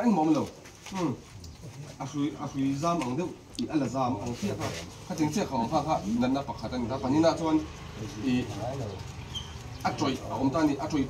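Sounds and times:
man speaking: 0.0s - 9.1s.

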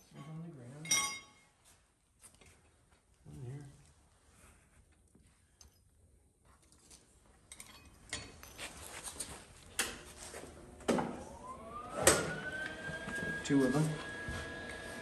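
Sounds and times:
metal clinks and knocks on concrete: 0.1s - 1.5s, 6.6s - 8.8s.

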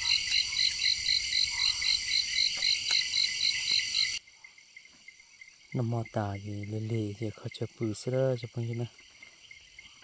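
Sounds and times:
insects shrilling at night: 0.0s - 10.0s
pulsing insect call: 0.0s - 10.0s.

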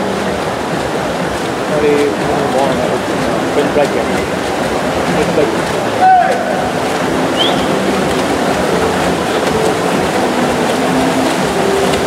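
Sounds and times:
swimmers splashing: 0.0s - 12.0s.

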